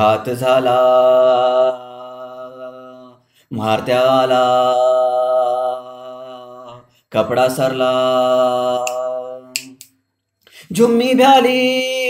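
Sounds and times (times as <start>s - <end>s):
short sharp clicks: 9.6s - 10.0s.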